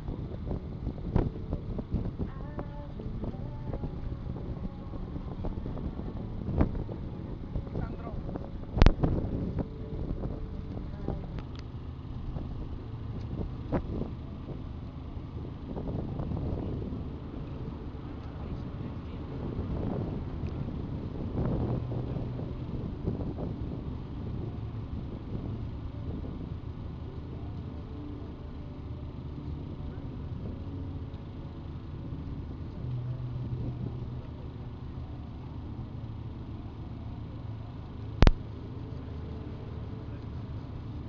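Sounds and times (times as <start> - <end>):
low hum: 0.0 - 41.0
motorway traffic rumble: 0.0 - 41.0.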